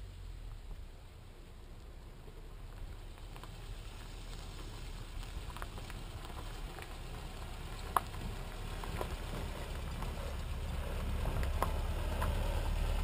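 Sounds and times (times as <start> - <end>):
truck engine and tyre rumble: 0.0 - 13.0
small ticks: 2.7 - 13.0.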